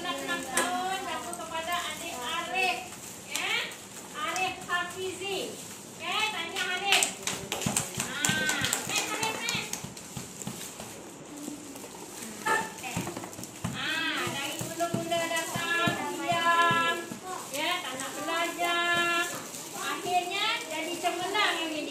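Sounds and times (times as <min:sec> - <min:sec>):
hand clapping: 0:06.5 - 0:10.2.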